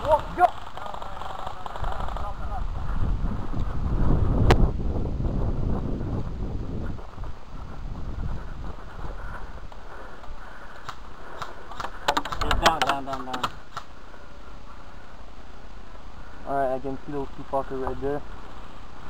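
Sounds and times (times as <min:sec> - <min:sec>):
gear rustling and rumbling: 0:00.0 - 0:13.1
sharp clicks: 0:10.2 - 0:14.0.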